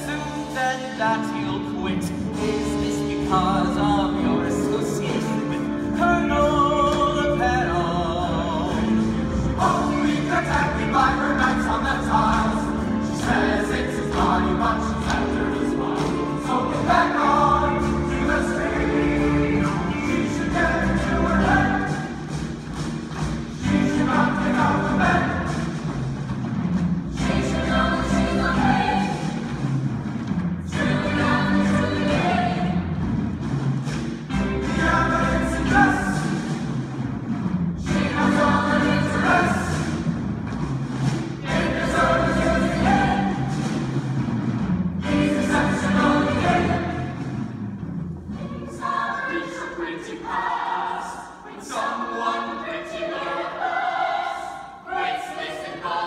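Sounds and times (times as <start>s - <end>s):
ensemble singing in chorus: 0.0s - 22.6s, 23.2s - 26.0s, 27.1s - 29.9s, 30.5s - 33.3s, 34.3s - 36.7s, 37.7s - 40.3s, 41.1s - 44.0s, 44.9s - 56.0s
orchestral accompaniment: 0.0s - 56.0s.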